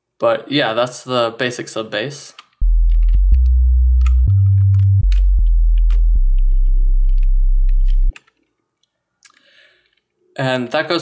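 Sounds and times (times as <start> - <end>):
sine-wave sub bass notes: 2.6 - 8.1.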